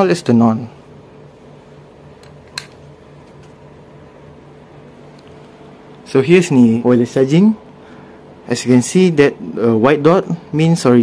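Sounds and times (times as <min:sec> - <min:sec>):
steady low hum: 0:00.0 - 0:11.0
wall switch click: 0:02.2 - 0:02.8.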